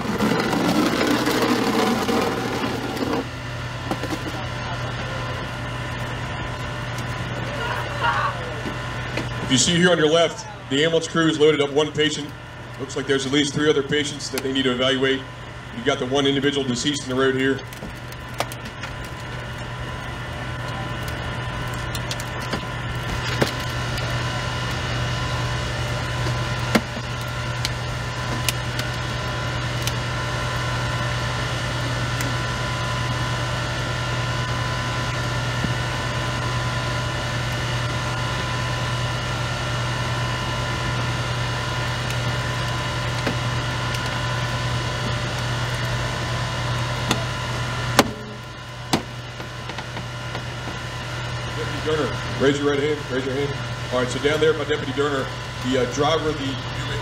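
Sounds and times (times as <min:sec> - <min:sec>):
hydraulic power unit droning: 0:00.0 - 0:57.0.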